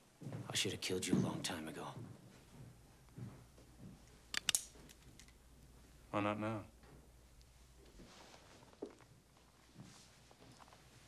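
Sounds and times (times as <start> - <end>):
revolver metallic clicks: 4.3 - 5.4.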